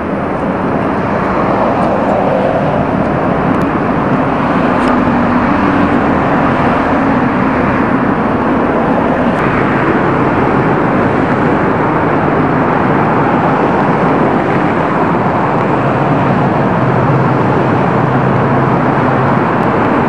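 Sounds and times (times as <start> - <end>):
street traffic: 0.0 - 20.0.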